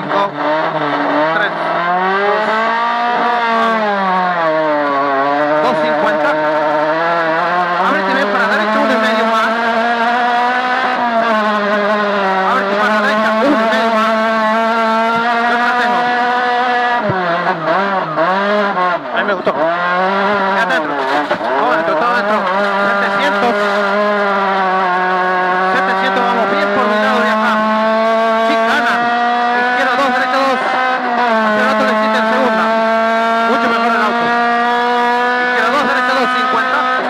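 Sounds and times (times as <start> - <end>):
rally car engine revving: 0.0 - 37.0.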